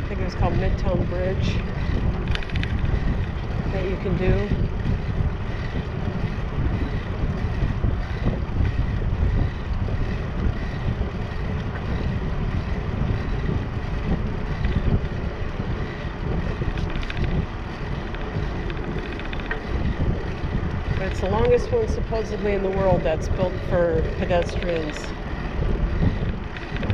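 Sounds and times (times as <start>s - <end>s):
bicycle tyres rolling on concrete: 0.0s - 26.9s
wind buffeting microphone: 0.0s - 26.9s.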